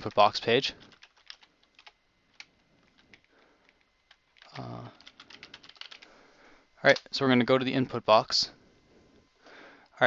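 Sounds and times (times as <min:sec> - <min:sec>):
faint keyboard typing: 0:00.0 - 0:06.1.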